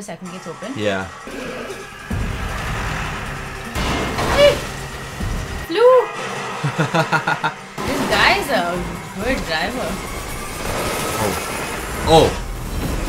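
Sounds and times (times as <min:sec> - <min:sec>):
dramatic film music: 0:00.0 - 0:13.0
voice crying out: 0:00.8 - 0:01.9
low rumble: 0:01.8 - 0:13.0.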